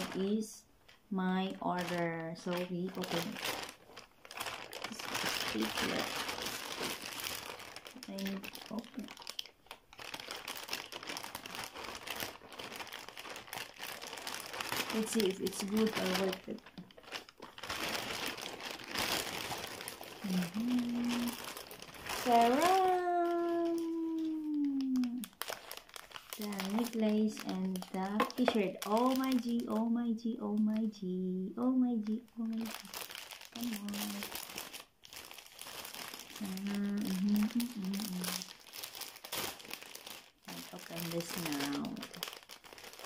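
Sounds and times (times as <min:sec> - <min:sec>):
plastic bag crinkling: 0:00.0 - 0:43.0.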